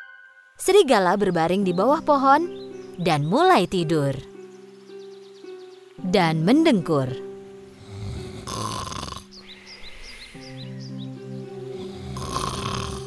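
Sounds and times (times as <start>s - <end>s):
soft background music: 0.0s - 13.0s
cartoon snoring: 7.8s - 9.3s, 11.8s - 13.0s.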